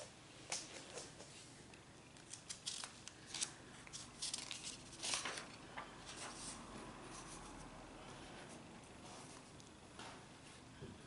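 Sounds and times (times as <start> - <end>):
paper rustling: 2.2 - 7.5.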